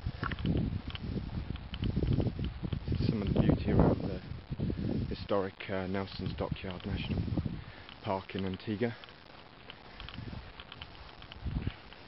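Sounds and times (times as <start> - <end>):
faint ticks: 0.0 - 3.6, 6.1 - 12.0
wind buffeting microphone: 0.0 - 5.4, 6.0 - 8.0, 9.9 - 12.0.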